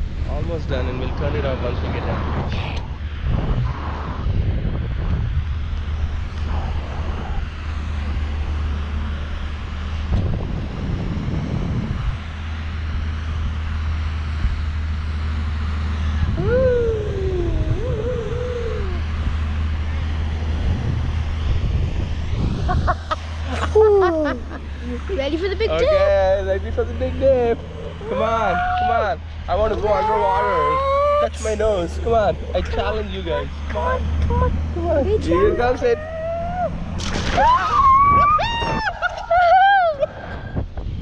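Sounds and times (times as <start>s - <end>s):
wind buffeting microphone: 0.0s - 30.3s, 31.0s - 41.0s
wavering voice-like sound: 16.2s - 19.4s, 30.0s - 31.6s, 33.4s - 36.8s.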